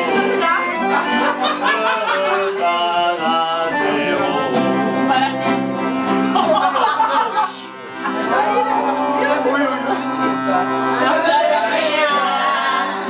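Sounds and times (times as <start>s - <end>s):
accordion holding chords: 0.0s - 13.0s
nylon-string guitar: 0.0s - 13.0s.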